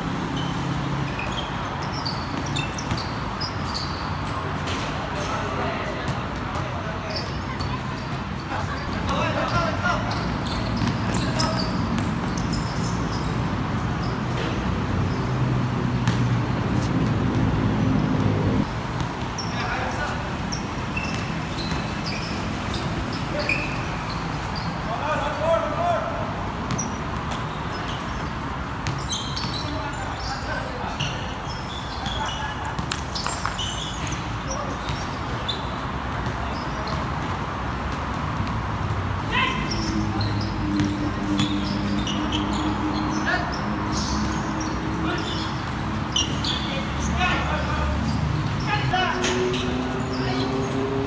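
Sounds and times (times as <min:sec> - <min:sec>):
sneakers squeaking: 0:00.0 - 0:51.0
players calling out: 0:01.1 - 0:13.3, 0:28.9 - 0:37.2, 0:39.2 - 0:51.0
basketball bouncing: 0:26.7 - 0:29.7.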